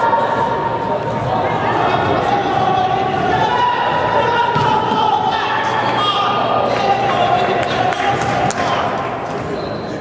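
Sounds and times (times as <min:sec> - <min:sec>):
echoing voices in a hall: 0:00.0 - 0:10.0.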